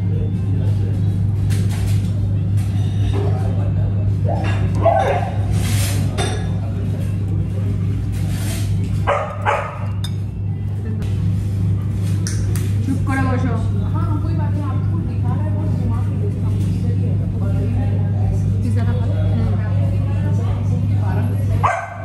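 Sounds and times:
murmur of voices: 0:00.0 - 0:22.0
dog barking: 0:04.8 - 0:05.4, 0:09.1 - 0:10.0, 0:21.6 - 0:22.0.

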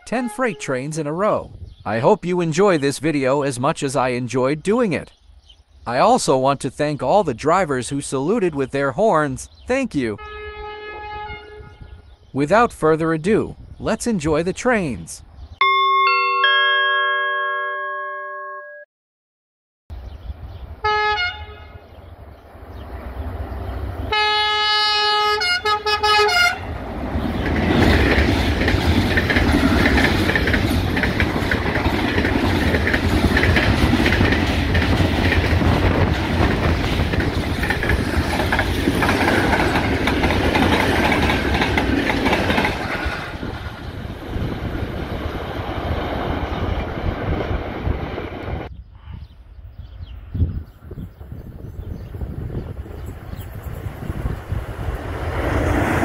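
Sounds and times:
locomotive horn: 0:00.0 - 0:00.8, 0:10.2 - 0:12.0, 0:20.8 - 0:21.9, 0:24.1 - 0:26.8
train wheels rumbling and clattering: 0:26.8 - 0:48.4.

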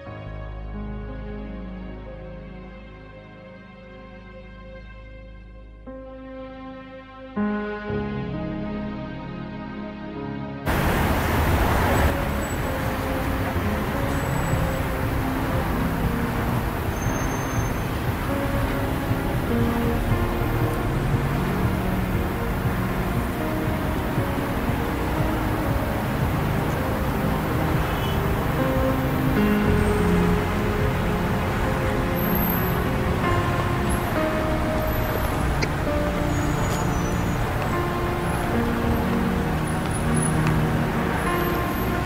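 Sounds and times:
city traffic rumble: 0:10.7 - 0:42.0
faint music: 0:10.7 - 0:42.0.

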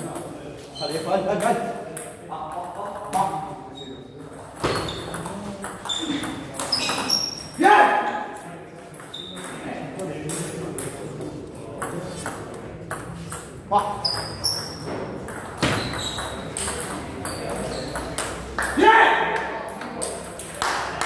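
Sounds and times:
player shouting: 0:07.6 - 0:08.2, 0:18.8 - 0:19.4.

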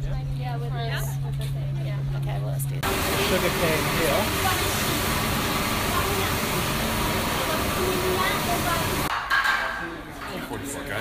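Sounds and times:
voices: 0:00.1 - 0:11.0
machinery hiss and rumble: 0:02.4 - 0:09.1.

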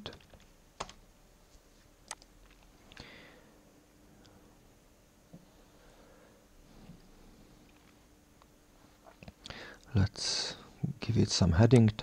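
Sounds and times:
computer keyboard keystrokes: 0:00.1 - 0:01.0.

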